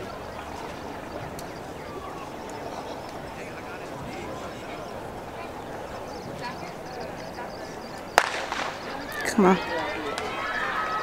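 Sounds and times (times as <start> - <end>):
spectators yelling and cheering: 0.0 - 11.0
starter's pistol shot: 8.2 - 8.8
loud shout: 8.6 - 11.0.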